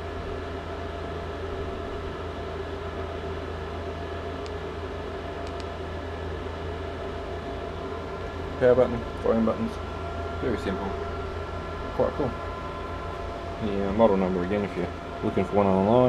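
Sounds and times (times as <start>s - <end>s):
steady background hum: 0.0s - 16.0s
faint clicks: 5.4s - 5.7s.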